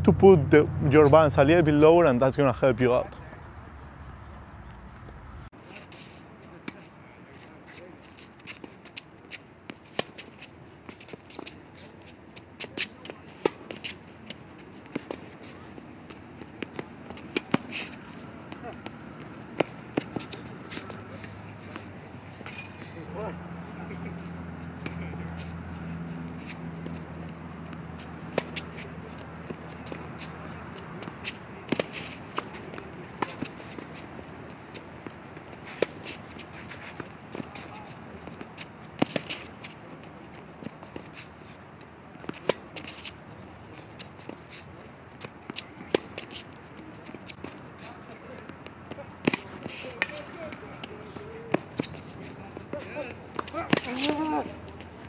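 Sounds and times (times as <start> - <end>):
sneakers scuffing on court: 3.2 - 23.1
tennis ball bouncing: 12.6 - 21.1, 27.6 - 41.3, 42.2 - 43.2, 43.8 - 55.0
racket striking tennis ball: 28.0 - 40.0, 43.8 - 52.8, 53.4 - 54.9.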